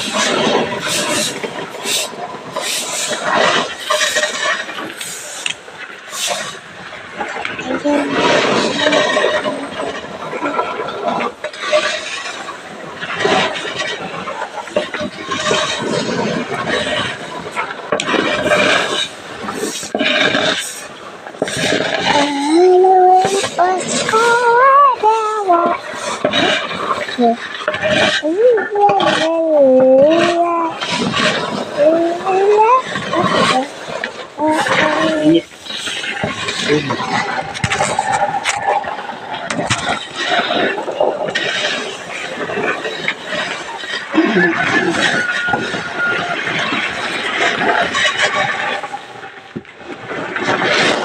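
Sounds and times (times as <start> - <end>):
grain scraping on concrete: 0.0 - 6.6, 13.1 - 49.0.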